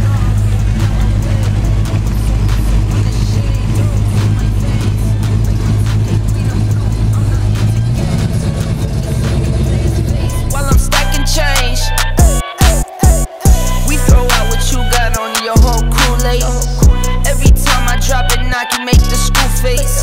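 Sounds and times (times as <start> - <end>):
car engine rumbling: 0.0 - 20.0
hip-hop music: 0.0 - 20.0.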